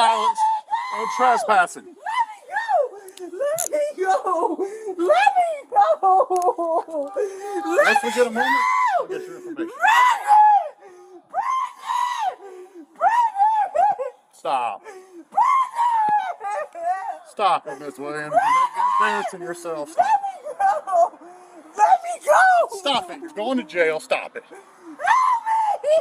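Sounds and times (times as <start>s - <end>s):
woman screaming and shouting: 0.0s - 14.2s, 15.3s - 23.7s, 24.8s - 26.0s.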